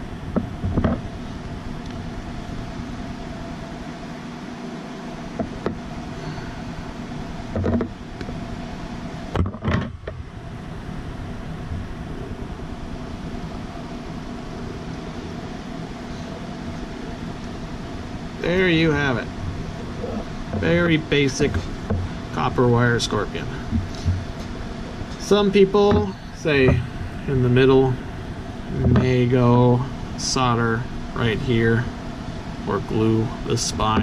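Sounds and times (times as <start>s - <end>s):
steady background hum: 0.0s - 34.0s
taps and knocks on tabletop: 0.4s - 1.0s.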